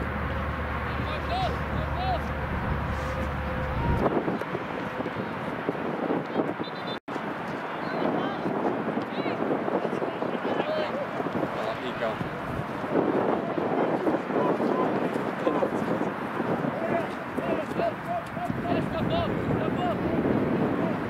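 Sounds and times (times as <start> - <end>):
wind on microphone: 0.0 - 21.0.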